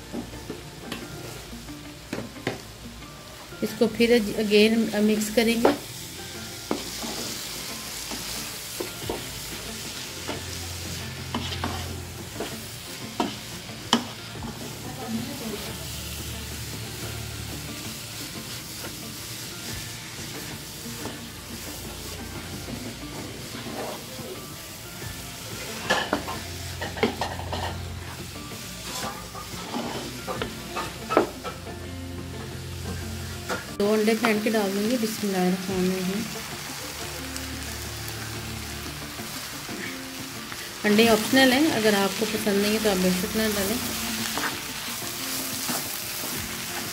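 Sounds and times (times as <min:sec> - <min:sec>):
food sizzling in a pan: 0:00.0 - 0:46.9
wooden spatula scraping a pan: 0:11.2 - 0:14.6, 0:22.5 - 0:24.3, 0:28.8 - 0:31.6.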